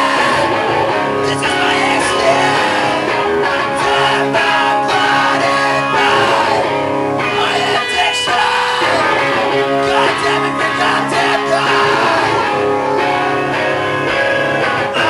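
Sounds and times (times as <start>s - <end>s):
distorted electric guitar and bass: 0.0s - 15.0s.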